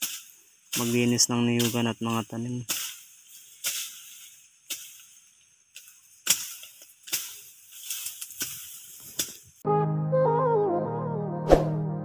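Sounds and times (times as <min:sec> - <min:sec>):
faint steady hiss: 0:00.0 - 0:09.6
machete chopping grass: 0:06.2 - 0:09.4.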